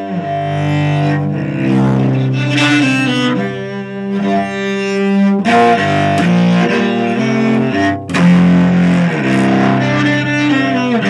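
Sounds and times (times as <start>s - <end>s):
bowed cello: 0.0s - 11.0s.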